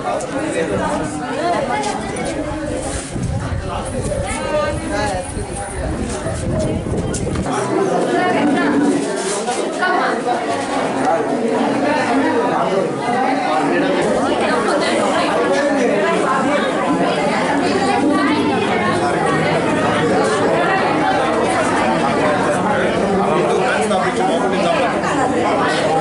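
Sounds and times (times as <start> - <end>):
crowd chatter: 0.0 - 26.0.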